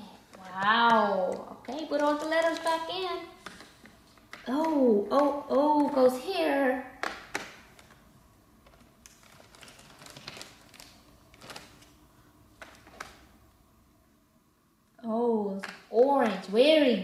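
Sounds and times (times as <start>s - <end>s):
plastic bag rustling: 7.6s - 13.3s.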